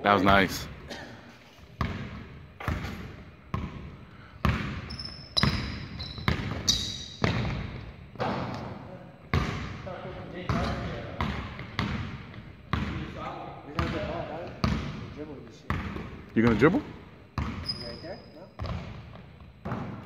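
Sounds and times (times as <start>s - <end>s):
basketball bouncing on hardwood floor: 1.8s - 8.6s, 10.5s - 13.0s, 13.8s - 15.0s, 17.4s - 17.8s, 18.6s - 20.0s.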